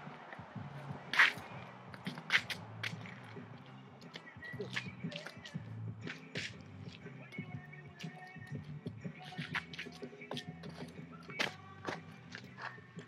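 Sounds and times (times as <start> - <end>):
music with low bass pattern: 0.0 - 13.0.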